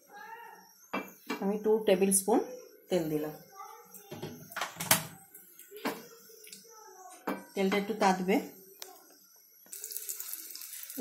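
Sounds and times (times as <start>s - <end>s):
hot oil sizzling in a frying pan: 9.7s - 11.0s.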